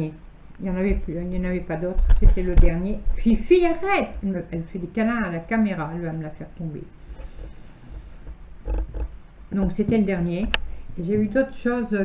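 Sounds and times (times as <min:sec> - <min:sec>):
rubbing on microphone: 0:07.0 - 0:11.5.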